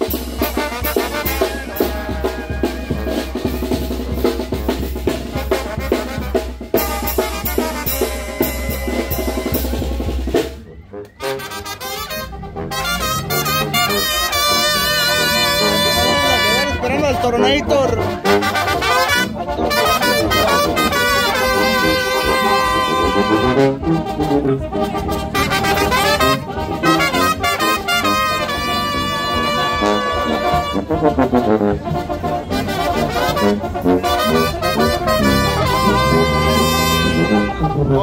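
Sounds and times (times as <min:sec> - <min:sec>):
brass band playing: 0:00.0 - 0:38.0.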